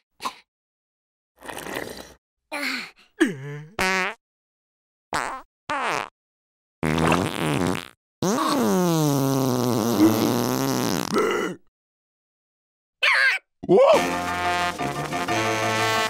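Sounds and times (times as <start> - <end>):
cartoon fart sound effect: 3.8 - 4.2, 5.2 - 6.1, 6.8 - 11.2, 13.6 - 16.0.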